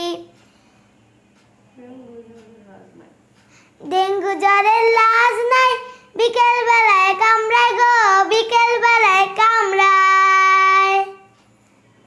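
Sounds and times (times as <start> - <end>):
girl singing unaccompanied: 0.0 - 0.3, 3.8 - 11.3.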